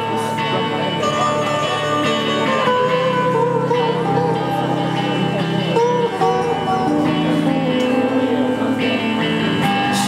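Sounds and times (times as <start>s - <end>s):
electric guitar melody: 0.0s - 10.0s
rock band playing: 0.0s - 10.0s.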